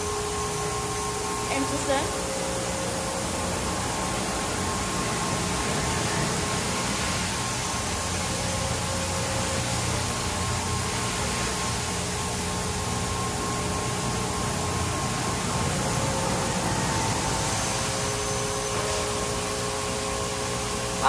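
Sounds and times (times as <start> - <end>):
faint steady hum: 0.0 - 21.0
water spraying: 0.0 - 21.0.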